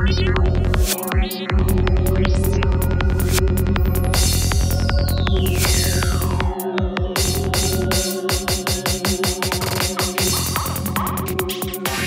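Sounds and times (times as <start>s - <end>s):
fast kick drum: 0.0s - 12.0s
rolling bassline: 0.0s - 12.0s.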